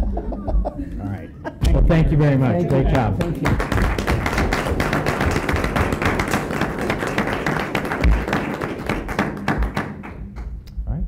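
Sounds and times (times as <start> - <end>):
audience applauding: 2.7 - 10.5.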